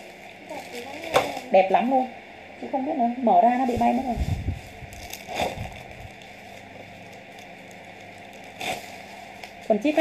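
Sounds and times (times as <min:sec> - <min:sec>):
noisy handling sounds: 0:00.0 - 0:01.6, 0:03.6 - 0:10.0
low room hum: 0:00.0 - 0:10.0.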